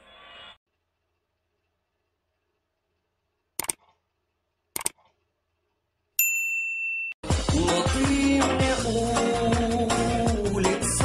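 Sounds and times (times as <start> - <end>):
short clicks: 3.6 - 4.0, 4.7 - 5.3
high bell ding: 6.2 - 7.2.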